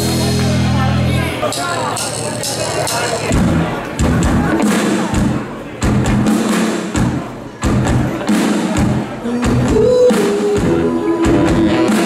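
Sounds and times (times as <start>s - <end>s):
voice: 0.0s - 5.9s, 7.6s - 12.0s
bass: 0.0s - 12.0s
live dance band: 0.0s - 12.0s
thumping drum beat: 3.3s - 12.0s.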